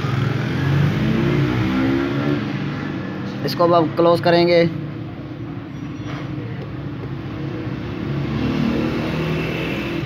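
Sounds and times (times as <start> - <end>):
motor traffic rumble: 0.0 - 10.0.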